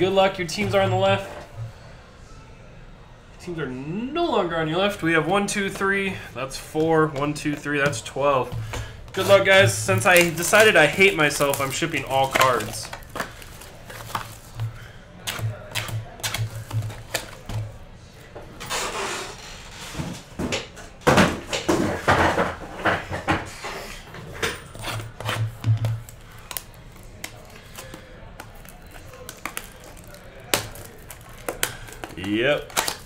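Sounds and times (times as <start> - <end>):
cardboard scraping: 9.1 - 14.6.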